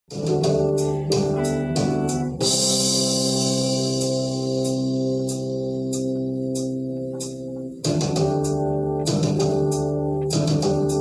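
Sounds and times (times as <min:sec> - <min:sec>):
electric guitar: 0:00.1 - 0:11.0
rock backing track: 0:00.1 - 0:11.0.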